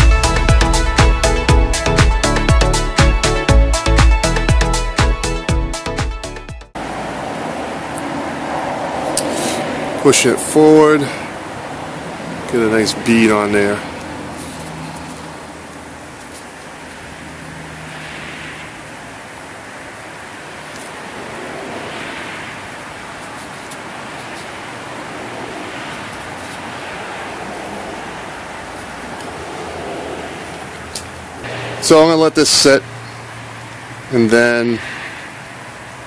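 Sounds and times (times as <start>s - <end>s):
outdoor background noise: 6.7s - 36.0s.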